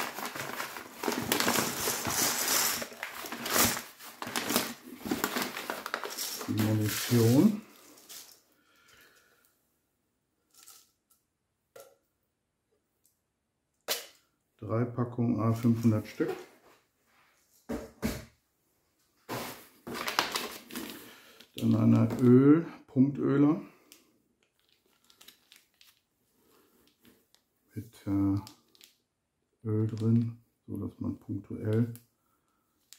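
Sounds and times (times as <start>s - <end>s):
plastic blister pack crinkling: 0.0s - 8.4s, 19.9s - 22.3s, 23.9s - 27.4s, 28.4s - 29.0s.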